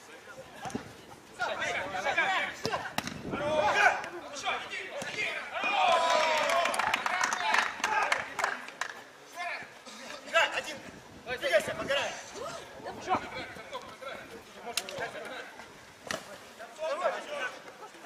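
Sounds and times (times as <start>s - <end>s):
players shouting: 1.4s - 8.7s.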